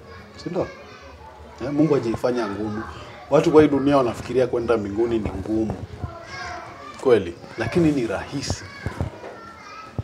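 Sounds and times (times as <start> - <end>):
children talking: 0.0 - 10.0.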